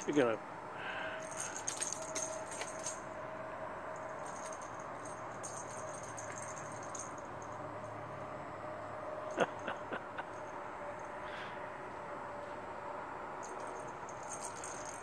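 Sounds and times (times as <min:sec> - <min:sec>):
cat toy ball jingling: 0:01.2 - 0:03.1, 0:03.9 - 0:08.0, 0:13.4 - 0:15.0.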